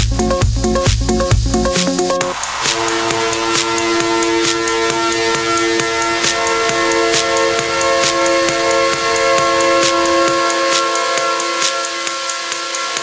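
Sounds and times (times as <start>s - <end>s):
bass: 0.0s - 13.0s
fast hi-hat and cymbal pattern: 0.0s - 13.0s
horn-like chord: 2.4s - 11.6s.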